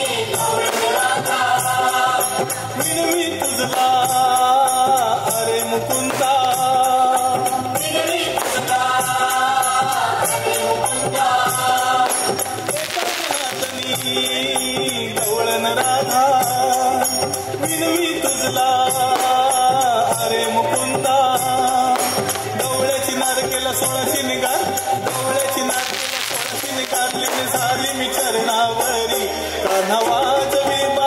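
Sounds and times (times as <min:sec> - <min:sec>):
band with drums and percussion: 0:00.0 - 0:31.0
voices singing together: 0:00.0 - 0:31.0.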